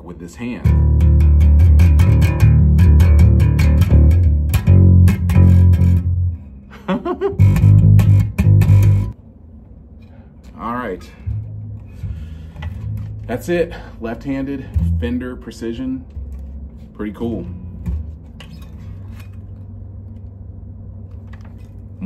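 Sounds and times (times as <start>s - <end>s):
electric bass plucked: 0.6s - 9.2s, 11.0s - 20.4s.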